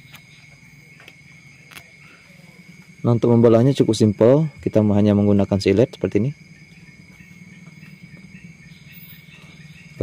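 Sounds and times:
crickets singing: 0:00.0 - 0:10.0
low buzzing hum: 0:00.0 - 0:10.0.

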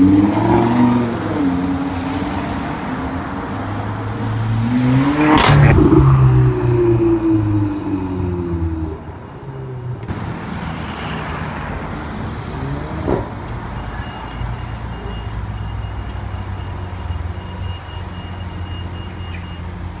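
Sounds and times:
engine revving burst: 0:04.6 - 0:06.8.

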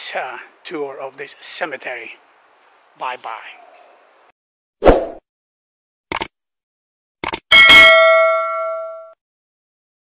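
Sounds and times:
quick double click: 0:06.1 - 0:06.3, 0:07.2 - 0:07.4
bell chime: 0:07.5 - 0:09.2.

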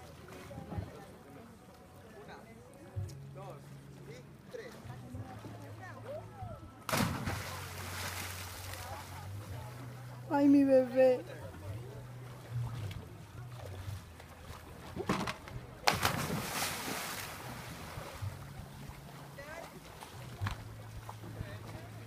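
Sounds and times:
big splash into water: 0:06.9 - 0:09.0, 0:15.0 - 0:18.2.

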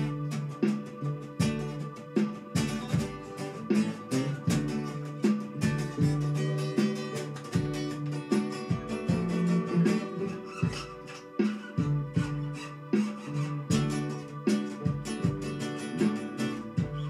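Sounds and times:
acoustic guitars strumming chords: 0:00.0 - 0:17.0.

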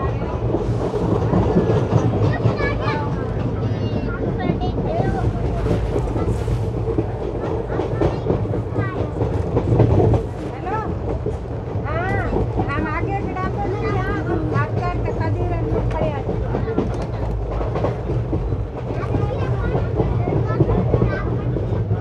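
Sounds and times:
train bogies rumbling: 0:00.0 - 0:22.0
train wheels clattering: 0:00.1 - 0:22.0.

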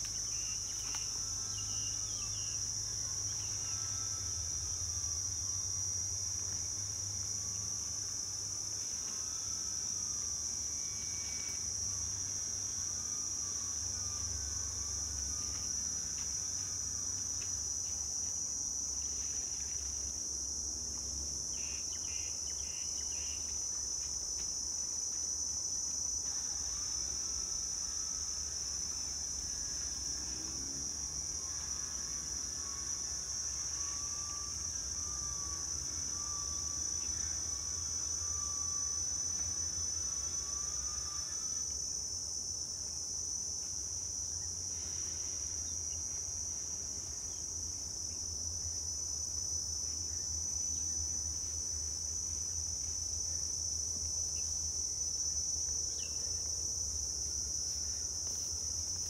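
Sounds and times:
insects droning: 0:00.0 - 0:59.0.

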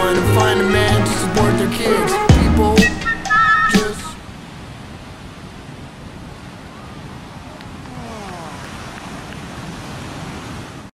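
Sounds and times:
ocean surf rushing: 0:00.0 - 0:10.9.

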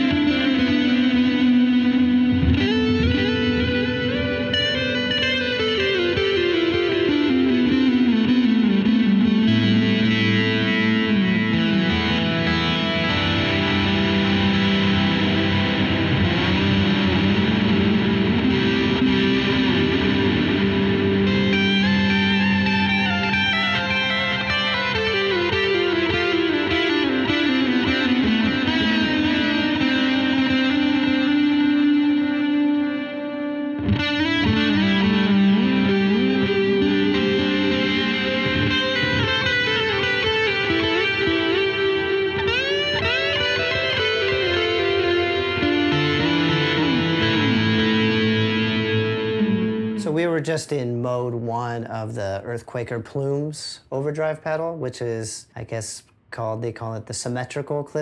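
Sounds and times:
overdriven electric guitar: 0:00.0 - 0:51.8.

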